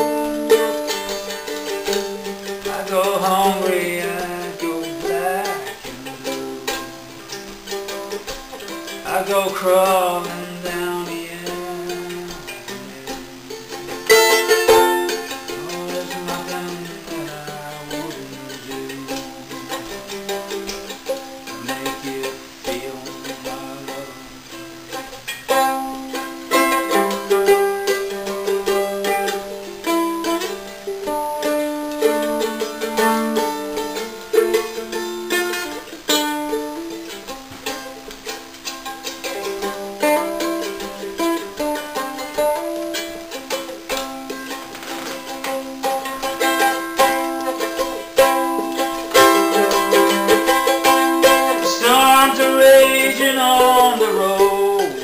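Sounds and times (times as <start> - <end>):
mandolin playing: 0.0 - 55.0.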